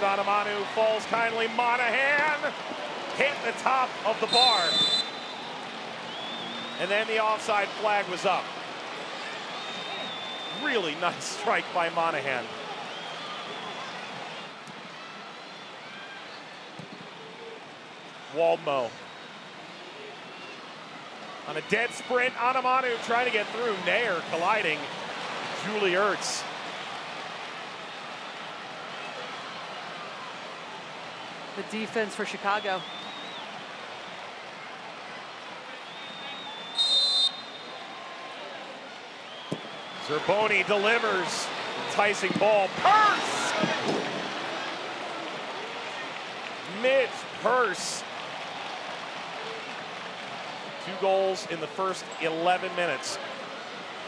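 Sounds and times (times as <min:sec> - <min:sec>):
stadium ambience hiss: 0:00.0 - 0:54.0
referee's whistle: 0:04.2 - 0:07.0, 0:09.5 - 0:10.8, 0:32.6 - 0:33.6, 0:35.8 - 0:38.0, 0:39.2 - 0:40.4
ball kicked thud: 0:39.5 - 0:39.7
distant players shouting: 0:39.5 - 0:44.5.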